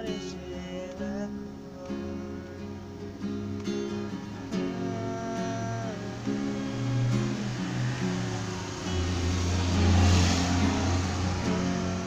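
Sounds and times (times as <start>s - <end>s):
acoustic guitar strumming: 0.0s - 12.0s
passing vehicle rumble: 1.5s - 12.0s.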